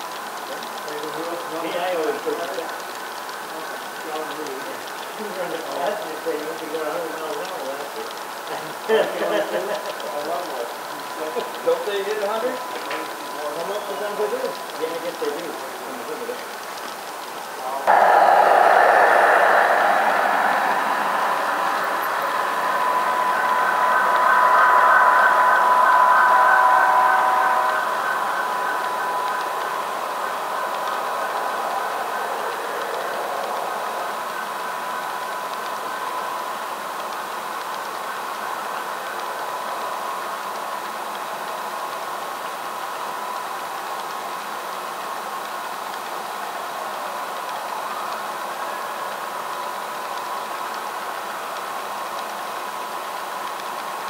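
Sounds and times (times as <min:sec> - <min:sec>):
model train rolling on track: 0:00.0 - 0:54.0
steady whine: 0:16.1 - 0:41.4.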